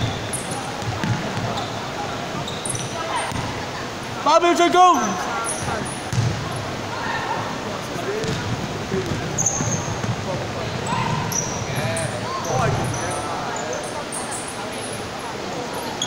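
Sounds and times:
sneakers squeaking: 0.0 - 3.6, 5.1 - 6.7, 8.1 - 15.1
players calling out: 0.0 - 15.0
basketball dribbling thuds: 0.8 - 1.7, 5.6 - 6.4, 8.2 - 10.4.

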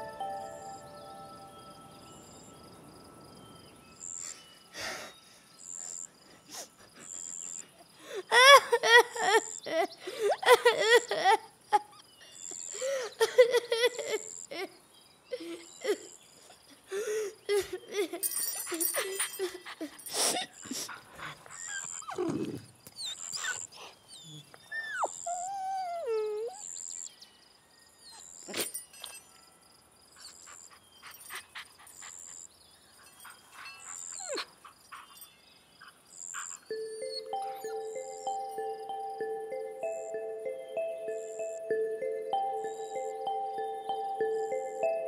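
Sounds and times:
dog whimpering and whining: 21.5 - 26.8, 33.7 - 34.5, 36.7 - 38.3.

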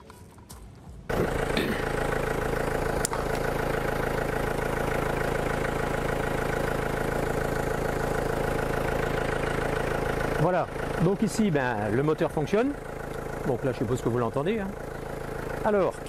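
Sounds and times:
car engine starting and idling: 1.1 - 16.0.

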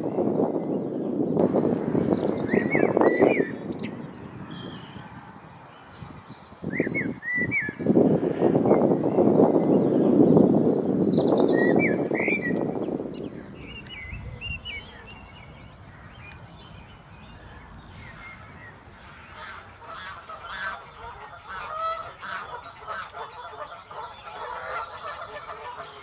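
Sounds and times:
blackbird singing: 1.2 - 5.1, 5.8 - 26.0.

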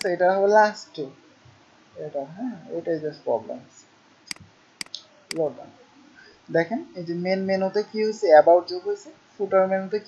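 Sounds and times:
computer mouse clicks: 4.3 - 5.4.

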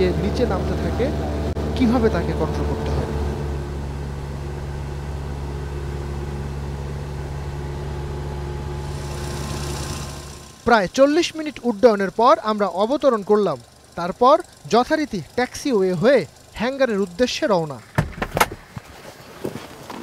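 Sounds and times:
person talking: 0.0 - 3.3, 10.6 - 17.8
propeller aircraft engine drone: 0.0 - 19.1.

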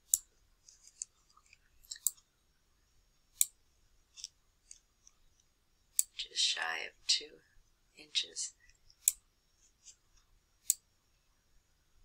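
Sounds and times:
mouse buttons clicking: 1.9 - 2.2.

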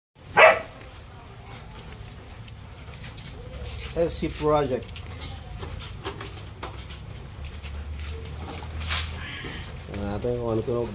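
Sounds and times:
dog barking: 0.3 - 0.8.

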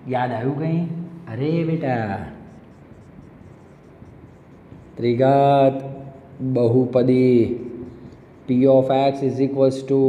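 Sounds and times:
marker writing on whiteboard: 2.0 - 9.6.

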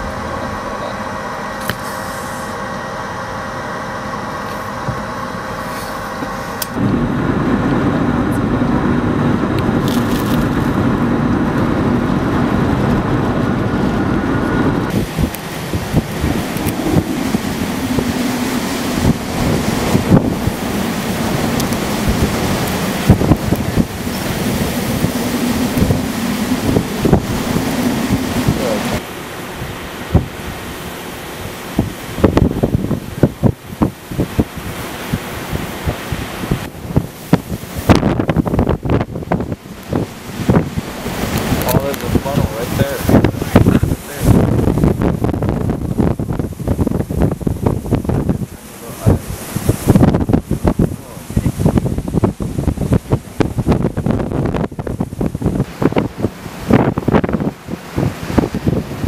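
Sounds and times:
car road noise: 0.0 - 59.0
wind buffeting microphone: 2.9 - 59.0.

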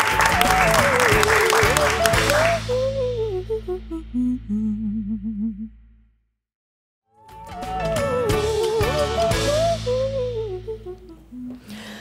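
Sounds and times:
theme music melody: 0.0 - 3.8, 7.2 - 10.6.

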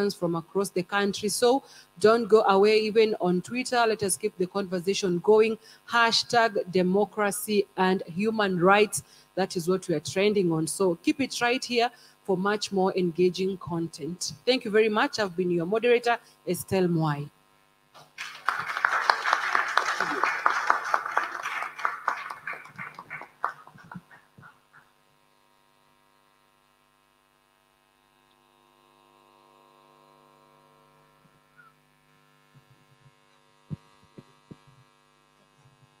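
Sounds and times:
faint electrical hum: 0.0 - 36.0
audience applause and cheering: 18.0 - 24.3.

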